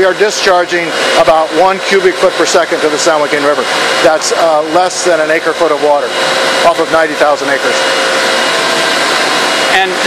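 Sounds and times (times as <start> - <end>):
pumps and motors whirring: 0.0 - 10.0.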